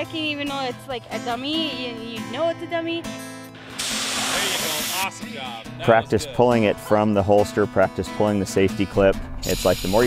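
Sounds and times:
spray canister hissing: 3.6s - 5.1s, 9.4s - 10.0s.

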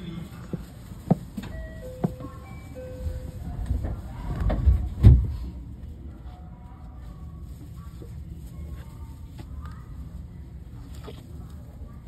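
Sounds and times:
melodic chime tones: 1.5s - 3.4s.

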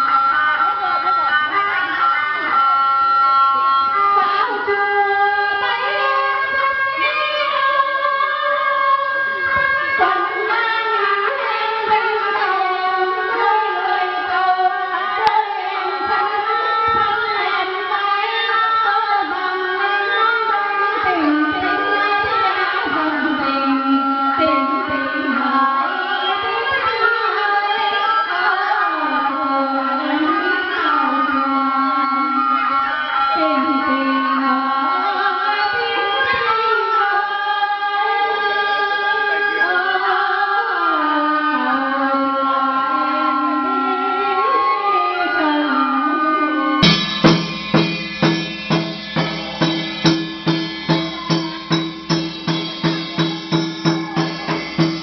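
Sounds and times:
women singing into microphones: 3.6s - 46.9s.

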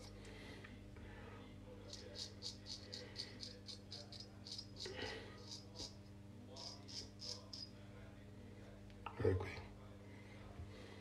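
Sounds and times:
razor scraping stubble: 1.9s - 7.6s.

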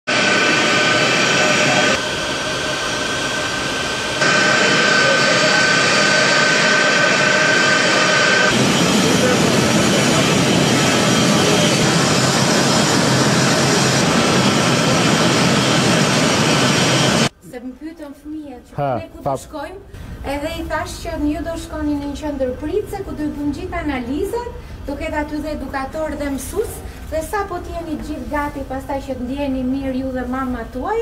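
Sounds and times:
high steady whine: 0.1s - 17.3s
jet engines rushing: 0.1s - 17.3s.

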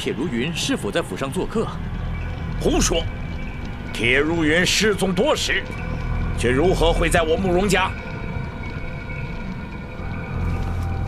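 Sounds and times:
low rumbling drone score: 0.0s - 11.0s.

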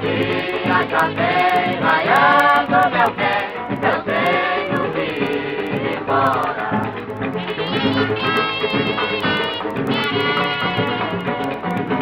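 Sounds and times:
women singing in a choir: 0.0s - 7.0s
musical accompaniment: 0.0s - 12.0s.

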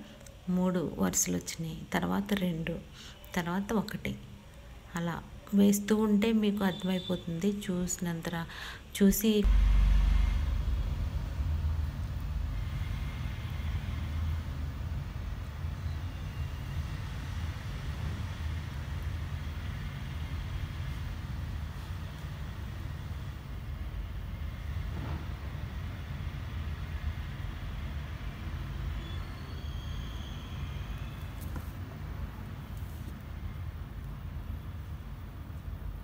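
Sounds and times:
low background rumble: 7.6s - 16.6s.

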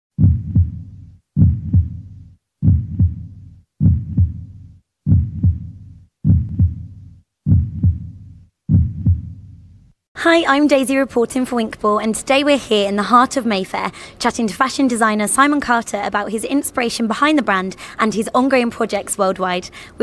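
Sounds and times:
heartbeat double thump: 0.1s - 9.6s.

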